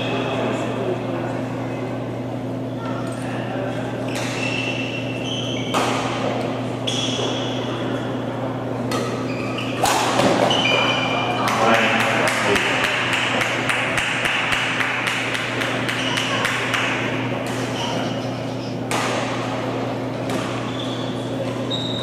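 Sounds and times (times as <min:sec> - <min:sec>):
shoes squeaking on court: 0:04.0 - 0:08.1, 0:08.9 - 0:11.3, 0:15.8 - 0:16.4, 0:17.5 - 0:18.9, 0:20.0 - 0:22.0
racket striking shuttlecock: 0:09.8 - 0:10.5, 0:18.9 - 0:19.5
spectators clapping: 0:11.5 - 0:17.2.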